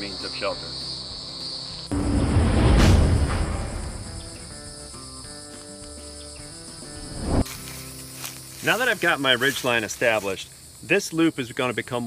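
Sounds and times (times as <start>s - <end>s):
rising whoosh: 1.9s - 4.8s, 7.0s - 7.5s
deep boom hit: 1.9s - 4.9s.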